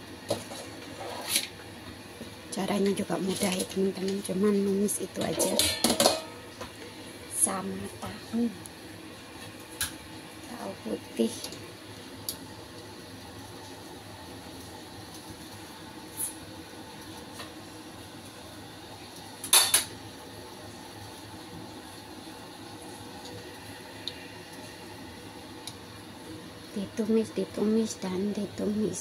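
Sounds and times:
covered wok simmering hiss: 0:00.0 - 0:29.0.

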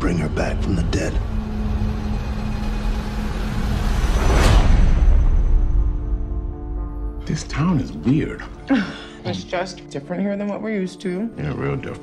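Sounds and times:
deep ominous rumbling drone: 0:00.0 - 0:07.1.

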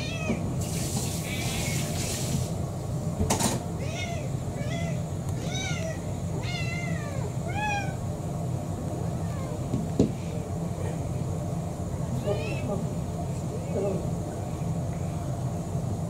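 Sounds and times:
cats meowing: 0:00.0 - 0:02.0, 0:03.8 - 0:08.1, 0:08.9 - 0:09.7.

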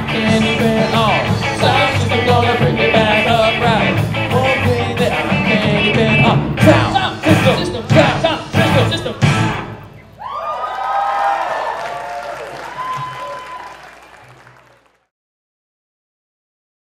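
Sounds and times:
rock band playing: 0:00.0 - 0:10.0
audience cheering and applauding: 0:10.2 - 0:15.1.

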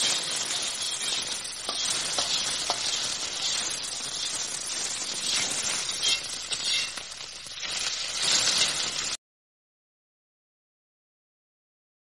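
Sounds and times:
metal utensil clicking on pan: 0:00.0 - 0:09.2
stir-fry sizzling in wok: 0:00.0 - 0:09.2.

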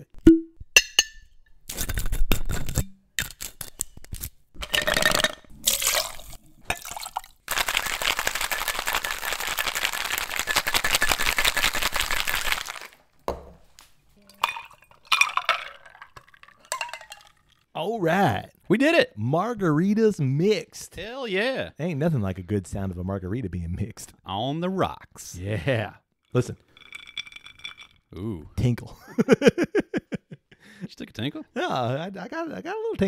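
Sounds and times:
ice and glass clinking: 0:04.6 - 0:07.9, 0:14.3 - 0:17.6, 0:26.4 - 0:28.1
cocktail shaker rattling with ice: 0:05.0 - 0:13.0, 0:14.4 - 0:17.5, 0:26.4 - 0:28.1.

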